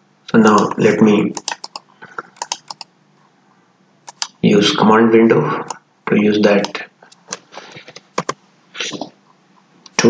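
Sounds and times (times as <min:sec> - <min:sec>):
computer clicking: 0:00.4 - 0:02.9, 0:04.0 - 0:04.4, 0:06.6 - 0:08.4.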